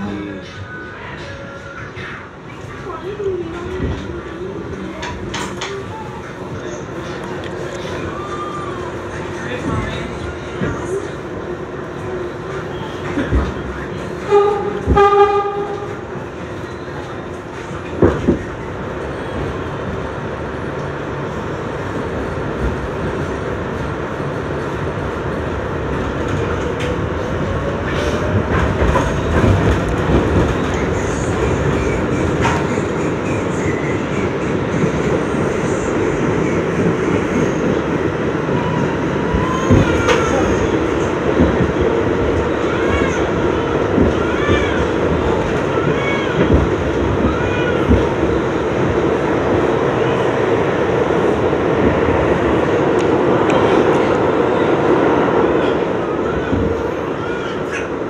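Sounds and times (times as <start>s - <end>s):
train wheels rumbling on track: 0.0s - 58.0s
train horn blasts: 14.2s - 16.0s.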